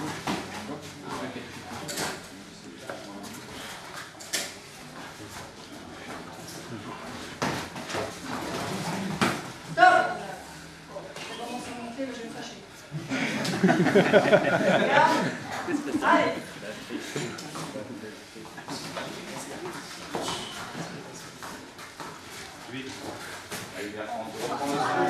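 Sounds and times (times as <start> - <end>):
voices in a hall: 0.0 - 25.0.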